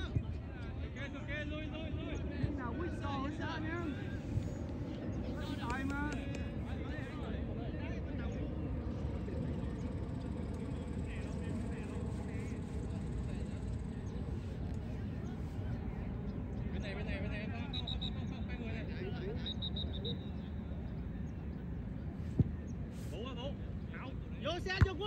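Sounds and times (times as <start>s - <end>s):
steady low rumble: 3.6s - 25.0s
distant shouts from players: 16.8s - 21.1s.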